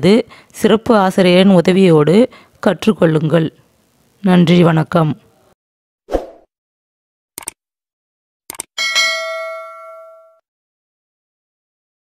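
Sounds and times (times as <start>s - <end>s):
notification bell ringing: 8.8s - 10.4s.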